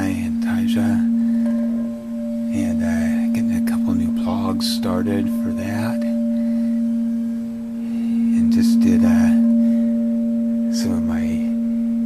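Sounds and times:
crystal singing bowl tone: 0.0s - 12.0s.

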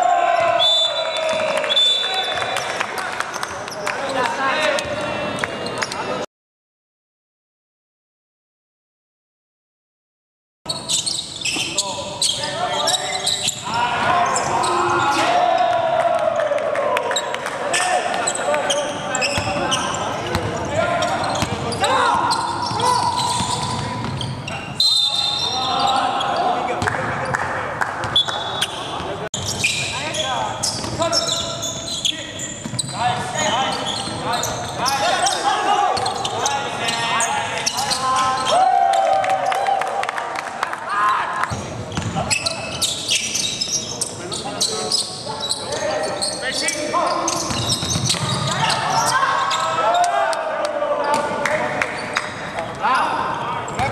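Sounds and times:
sneakers squeaking: 0.3s - 6.2s, 10.7s - 15.8s, 17.1s - 27.4s, 28.0s - 39.1s, 41.4s - 50.2s, 51.0s - 52.8s, 53.6s - 53.9s
players calling out: 10.8s - 27.4s, 40.8s - 53.9s.

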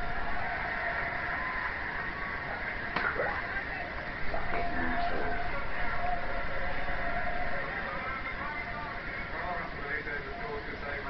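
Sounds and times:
stadium crowd noise from tv: 0.0s - 11.0s.

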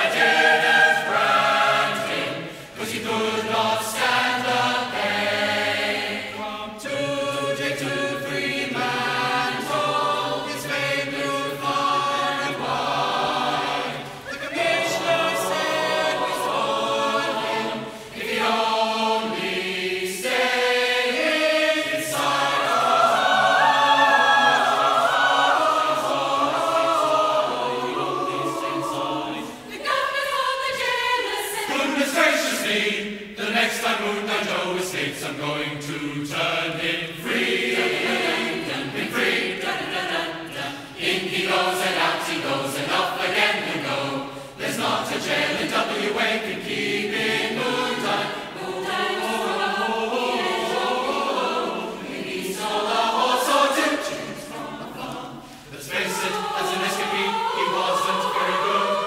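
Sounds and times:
mixed choir singing: 0.0s - 59.0s.

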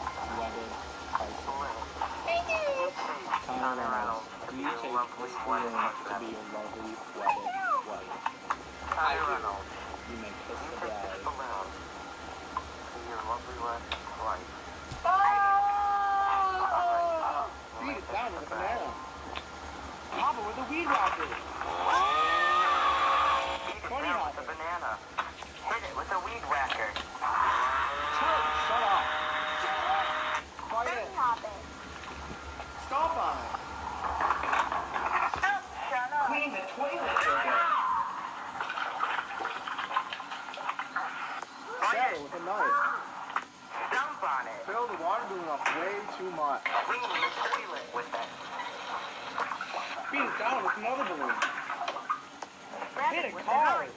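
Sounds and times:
overlapping voices from tablet speakers: 0.0s - 53.9s
young man screaming: 15.0s - 17.4s, 21.7s - 23.5s.

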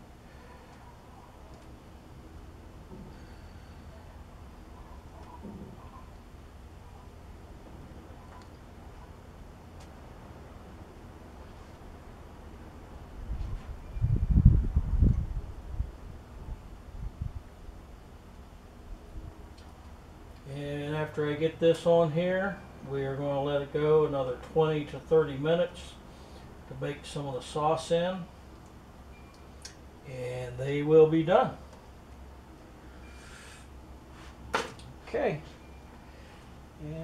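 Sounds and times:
wind rumble on microphone: 13.0s - 17.8s.

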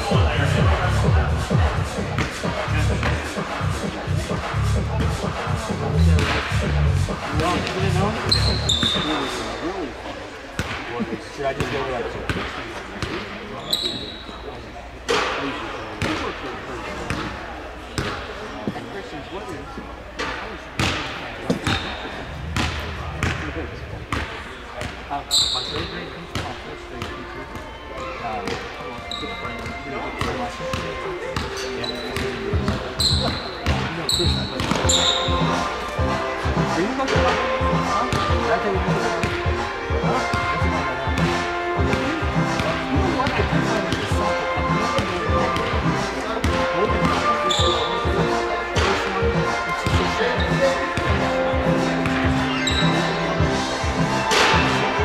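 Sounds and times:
sneakers squeaking on court: 7.6s - 9.6s, 13.0s - 14.5s, 20.8s - 23.5s, 24.1s - 35.8s, 46.4s - 48.2s, 49.8s - 51.2s, 52.0s - 53.2s.

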